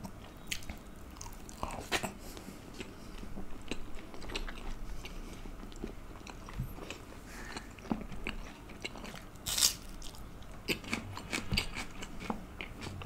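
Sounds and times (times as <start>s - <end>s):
chewing food: 0.0s - 13.0s.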